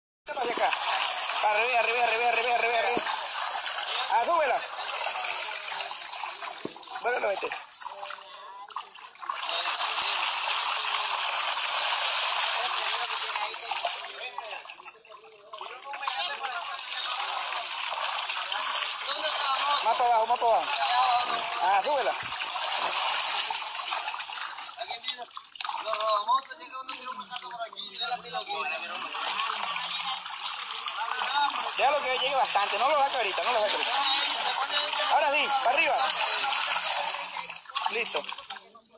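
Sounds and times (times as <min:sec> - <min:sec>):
fish thrashing and splashing: 0:00.4 - 0:26.2, 0:29.0 - 0:38.7.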